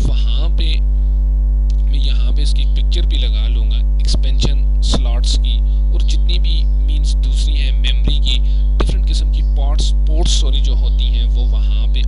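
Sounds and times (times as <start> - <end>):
loud electrical mains hum: 0.0 - 12.0.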